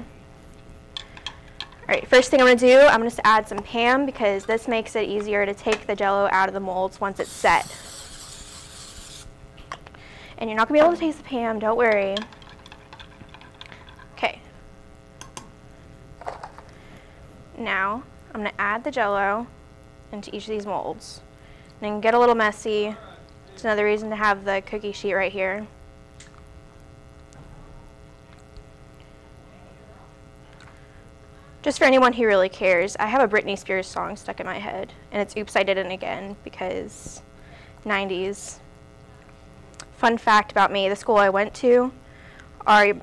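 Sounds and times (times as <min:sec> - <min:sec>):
low electrical hum: 0:00.0 - 0:43.0
aerosol spray hissing: 0:07.2 - 0:09.3.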